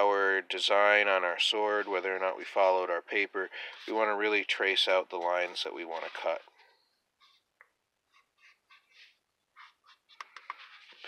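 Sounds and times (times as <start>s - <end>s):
marker scratching on paper: 8.1s - 11.0s.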